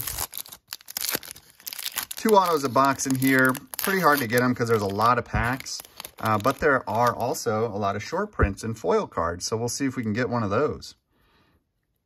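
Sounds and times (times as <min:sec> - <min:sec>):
plastic wrapper tearing and crinkling: 0:00.0 - 0:07.5.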